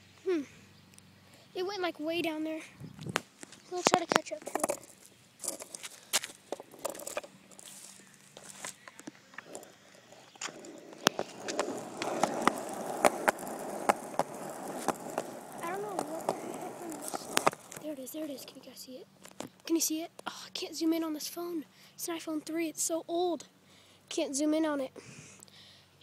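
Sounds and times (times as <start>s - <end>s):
skateboard wheels rolling: 3.1s - 19.8s.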